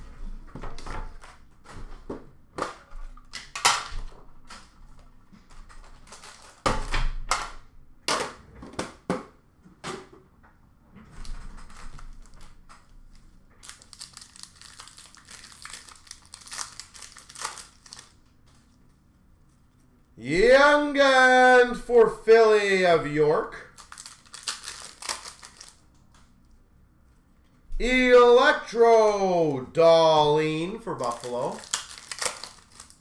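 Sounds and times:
wrapper crinkling: 11.7s - 19.8s, 23.6s - 25.9s, 30.9s - 33.0s
card packs knocking and rustling: 23.8s - 25.7s, 31.0s - 33.0s.

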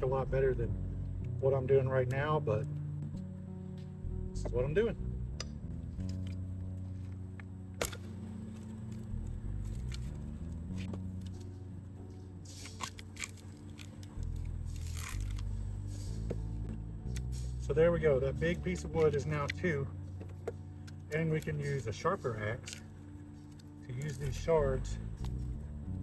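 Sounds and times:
background music: 0.0s - 26.0s
wood fibres cracking and tearing: 7.8s - 11.6s, 12.5s - 17.6s, 20.3s - 25.6s.

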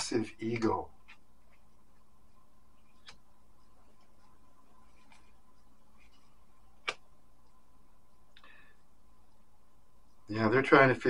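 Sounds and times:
faint steady hum: 0.0s - 11.0s
cards clicking on table: 6.8s - 7.0s.

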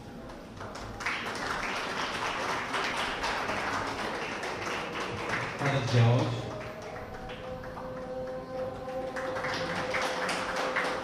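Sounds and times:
audience applauding: 0.2s - 11.0s.

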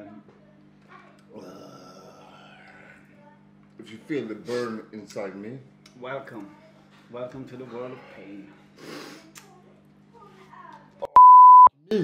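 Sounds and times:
electronic censor bleep: 11.1s - 11.7s.

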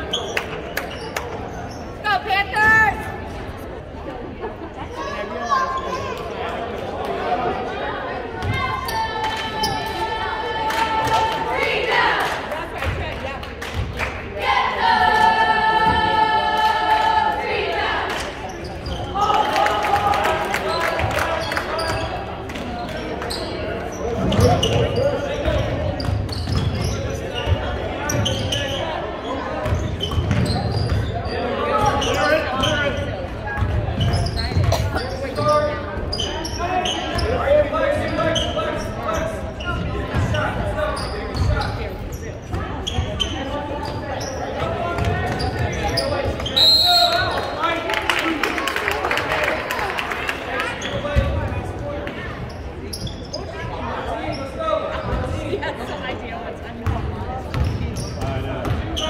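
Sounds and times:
shouting and chatter: 0.0s - 59.0s.

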